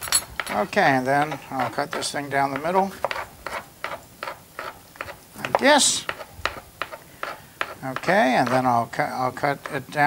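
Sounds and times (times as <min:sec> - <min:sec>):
knife chopping on cutting board: 0:00.4 - 0:08.7.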